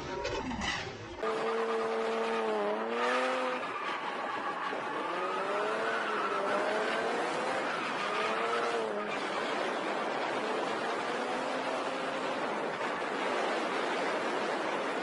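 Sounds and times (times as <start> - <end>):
car engine revving: 0.6 - 15.0.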